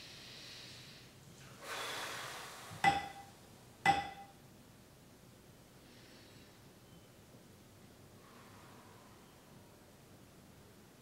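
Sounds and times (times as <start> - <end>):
long breath in: 0.0 - 2.8.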